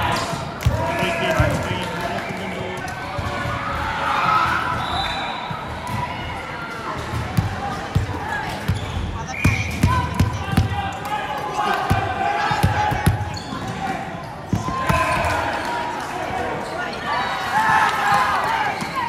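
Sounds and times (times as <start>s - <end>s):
players chattering and calling: 0.0s - 19.0s.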